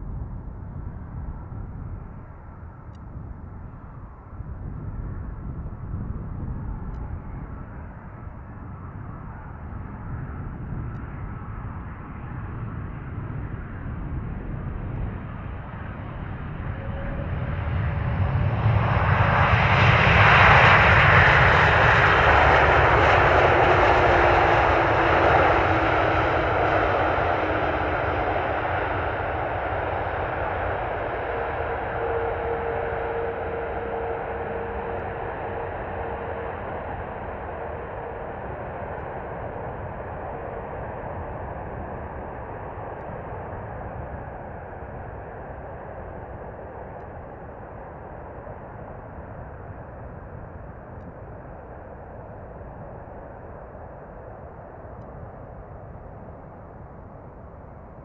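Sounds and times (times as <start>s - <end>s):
jet engines of landing plane: 0.0s - 58.0s
faint steady tones: 20.6s - 58.0s.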